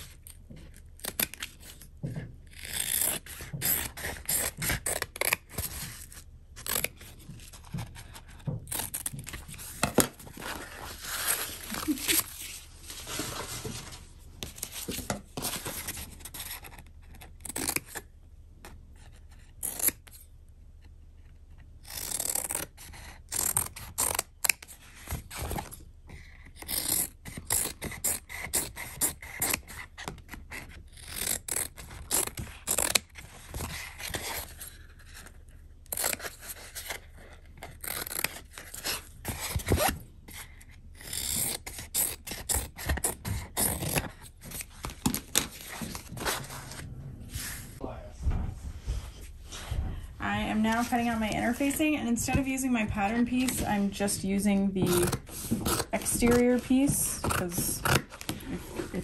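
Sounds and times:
scissors snipping fabric: 21.8 - 24.7, 37.6 - 39.9.

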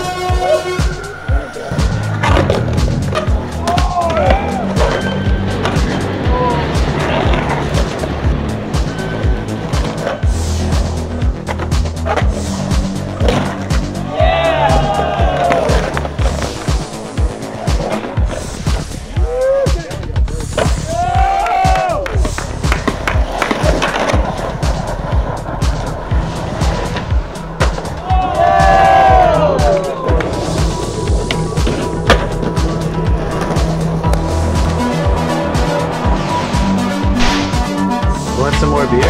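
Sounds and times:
background music: 0.0 - 39.0
skateboard wheels rolling on concrete: 0.0 - 39.0
skateboard trucks grinding coping: 1.7 - 14.0, 22.2 - 34.9
skateboard clacks and knocks: 20.5 - 26.0.

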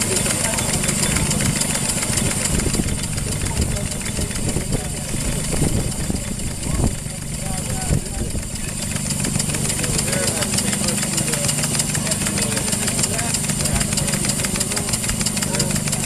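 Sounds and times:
model steam engine chuffing: 0.0 - 16.0.

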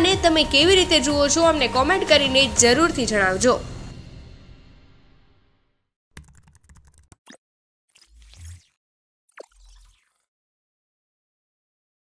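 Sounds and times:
background music: 0.0 - 5.5.

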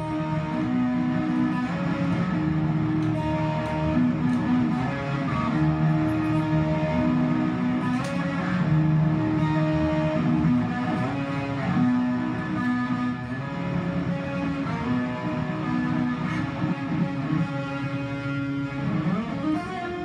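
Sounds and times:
guitars playing chords: 0.0 - 20.0.

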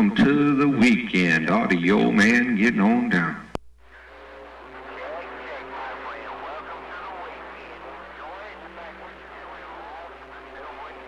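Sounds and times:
radio hiss: 0.0 - 11.0
garbled radio voice: 4.8 - 11.0.

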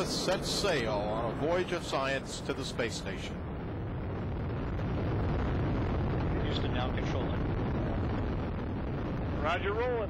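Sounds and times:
deep rocket engine roar: 0.0 - 10.0.

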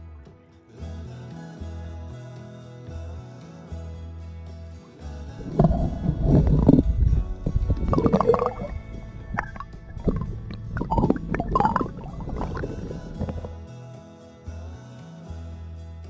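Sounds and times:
background guitar music: 1.4 - 16.0
water sloshing and gurgling: 5.4 - 13.5.

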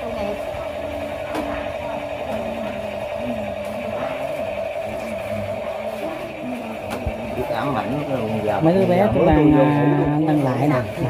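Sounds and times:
steady high hum: 0.0 - 11.0.

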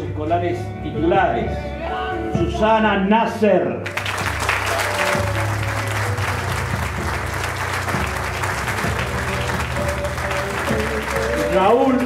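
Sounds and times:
music playing: 0.0 - 12.0
crowd applauding: 3.8 - 12.0.

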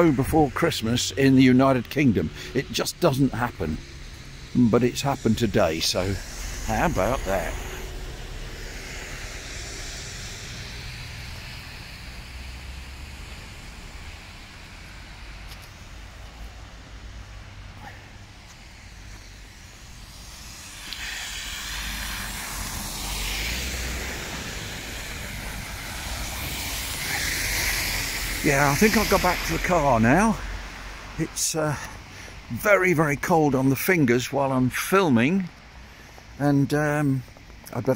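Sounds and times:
street noise: 0.0 - 37.9
tyres hissing on wet road: 0.0 - 37.9.

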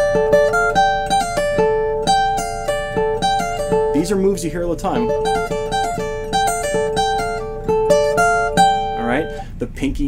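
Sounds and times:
acoustic guitar picked notes: 0.0 - 10.0.

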